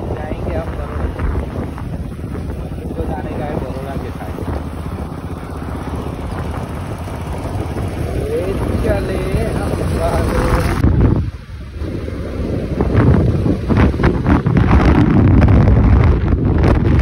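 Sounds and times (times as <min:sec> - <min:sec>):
motorcycle engine: 0:00.0 - 0:17.0
road noise: 0:00.0 - 0:17.0
wind rushing over microphone: 0:00.0 - 0:17.0.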